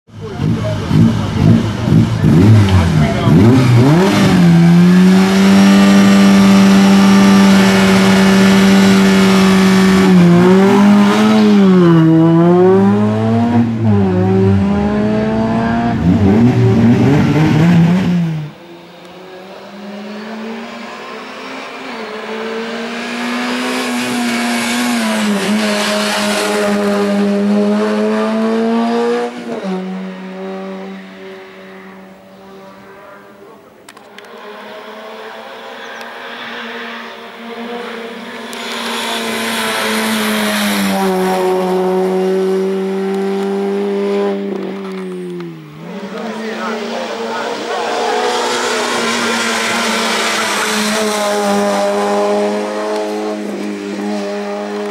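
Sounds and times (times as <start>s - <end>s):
race car engine revving: 0.1s - 54.9s.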